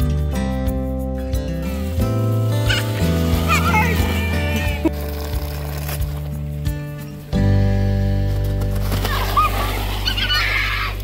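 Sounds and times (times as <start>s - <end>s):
background music low chord: 0.0s - 10.1s
water splashing from hose: 1.3s - 6.6s, 8.6s - 11.0s
children squealing: 2.6s - 5.0s, 9.0s - 11.0s.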